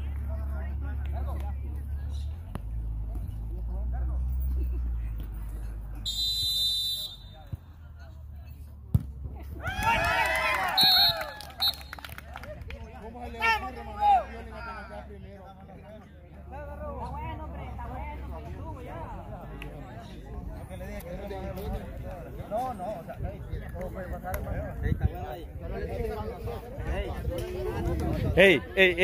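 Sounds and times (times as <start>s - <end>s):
referee's whistle: 6.0s - 7.5s, 10.8s - 12.0s
ball kicked sharply: 8.9s - 9.2s.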